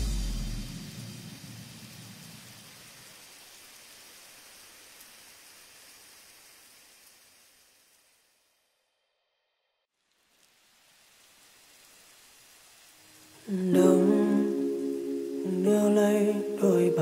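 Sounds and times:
lofi music low notes: 0:00.0 - 0:01.8
soft rain-like hiss: 0:00.0 - 0:17.0.

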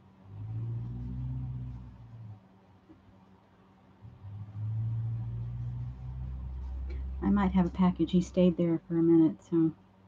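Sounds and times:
vehicle engine rumbling: 0:00.2 - 0:02.4, 0:04.0 - 0:08.4.

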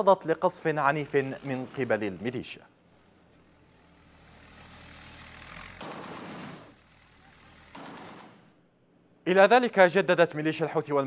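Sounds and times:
armoured vehicle engine running: 0:00.1 - 0:08.7
gunfire bursts: 0:05.6 - 0:07.0, 0:07.6 - 0:08.6.

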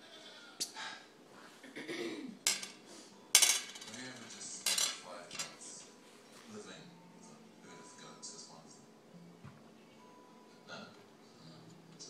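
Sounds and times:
clinks on glass tabletop: 0:02.4 - 0:02.8.

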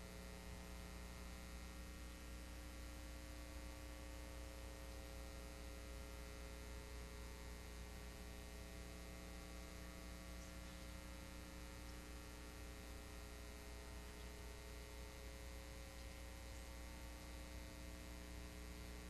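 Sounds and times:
electrical mains hum: 0:00.0 - 0:19.0.

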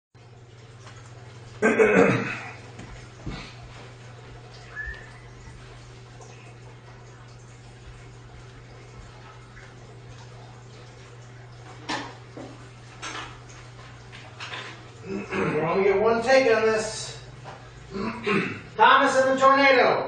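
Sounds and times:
steady low hum: 0:00.2 - 0:19.0.

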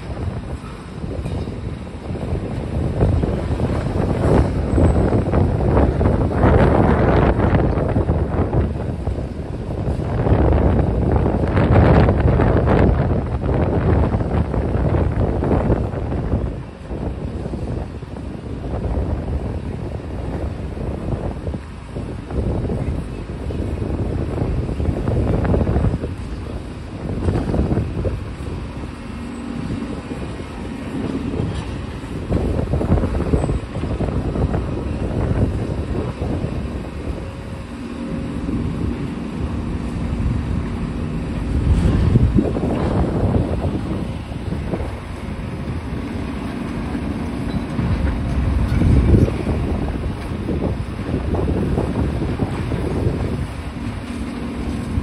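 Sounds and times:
excavator diesel engine rumble: 0:00.0 - 0:55.0
wind buffeting microphone: 0:00.0 - 0:55.0.

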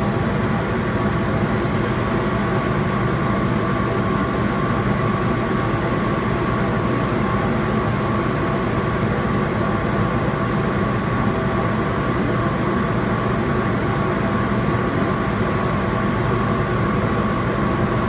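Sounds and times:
laser cutter humming with whine: 0:13.4 - 0:18.0.

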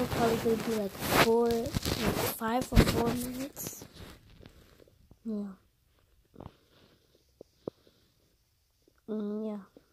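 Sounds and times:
breath close to microphone: 0:06.3 - 0:08.4.

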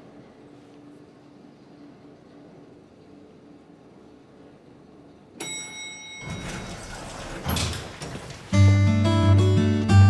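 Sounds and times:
elevator arrival chime: 0:05.4 - 0:10.0
elevator doors sliding open: 0:05.4 - 0:10.0.

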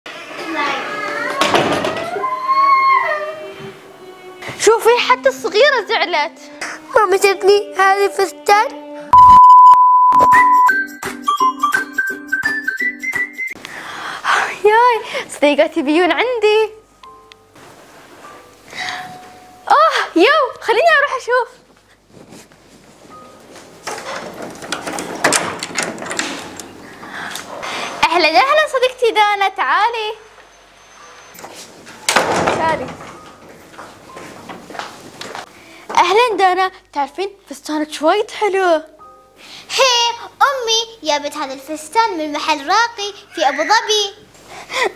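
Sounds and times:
girl crying: 0:02.1 - 0:03.6, 0:43.1 - 0:44.0
door handle and lock rattling: 0:23.8 - 0:26.8.

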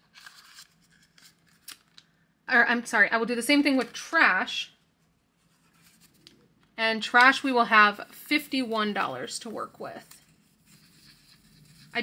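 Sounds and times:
card rustling into vinyl envelope: 0:00.0 - 0:01.9.

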